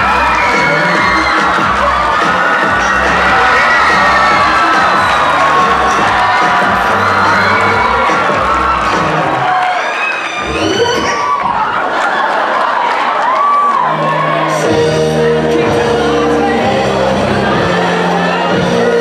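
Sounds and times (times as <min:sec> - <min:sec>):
music with steady bass: 0:00.0 - 0:09.5, 0:13.9 - 0:19.0
audience cheering and shouting: 0:00.0 - 0:19.0.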